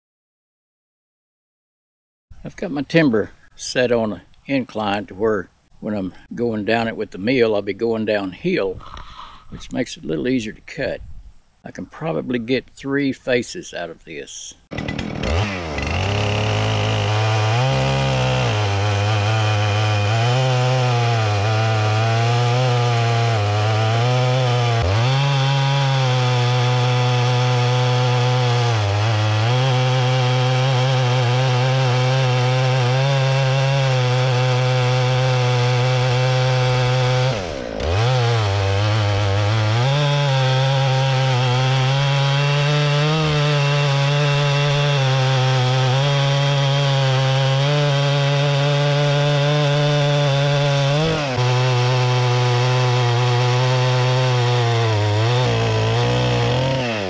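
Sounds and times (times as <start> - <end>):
chainsaw ripping through timber: 14.7 - 57.0.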